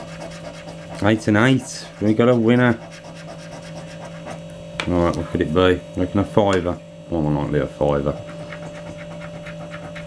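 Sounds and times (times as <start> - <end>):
coin scratching scratch card: 0.0 - 4.4, 8.2 - 10.0
steady low hum: 0.0 - 10.0.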